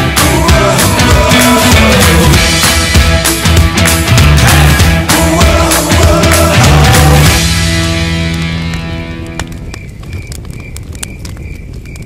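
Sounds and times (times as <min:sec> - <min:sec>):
advert background music: 0:00.0 - 0:09.8
campfire crackling with pops: 0:00.3 - 0:12.0.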